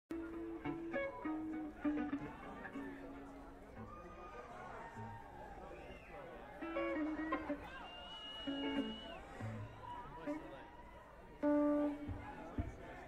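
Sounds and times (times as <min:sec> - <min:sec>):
guitar notes picked: 0:00.1 - 0:04.1, 0:06.6 - 0:07.8, 0:08.4 - 0:10.4, 0:11.4 - 0:13.0
concert crowd noise: 0:00.1 - 0:13.0
high held whistle: 0:07.7 - 0:09.4.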